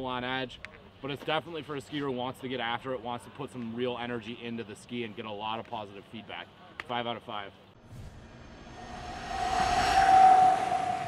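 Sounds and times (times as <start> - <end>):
steady held tone: 7.8 - 11.0
whoosh sound effect: 7.8 - 11.0.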